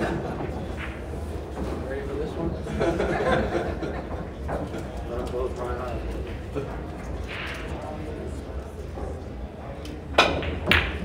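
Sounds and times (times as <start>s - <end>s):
background crowd talking: 0.0s - 11.0s
pool balls clacking: 0.0s - 11.0s.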